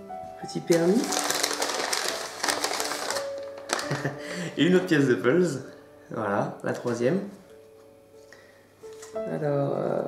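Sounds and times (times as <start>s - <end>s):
soft background music: 0.0s - 10.0s
crinkly wrapping torn open: 0.7s - 4.2s.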